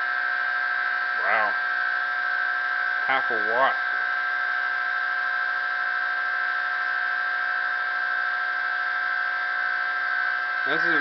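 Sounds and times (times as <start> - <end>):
pulse motor high-pitched whine: 0.0 - 11.0.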